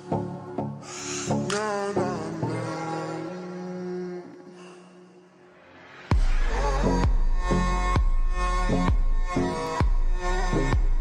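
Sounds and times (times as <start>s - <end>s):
deep kick drum: 6.1s - 11.0s
steady bass: 6.1s - 11.0s
sustained synth chords: 6.1s - 11.0s.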